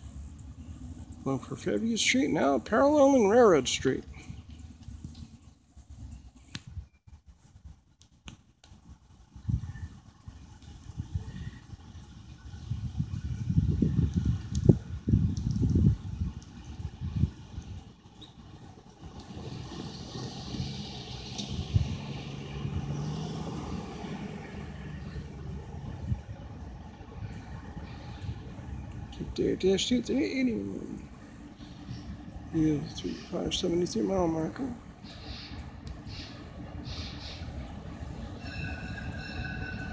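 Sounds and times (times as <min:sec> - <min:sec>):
distant locomotive engines droning: 0:00.0 - 0:39.9
wind gusts on microphone: 0:08.8 - 0:39.9.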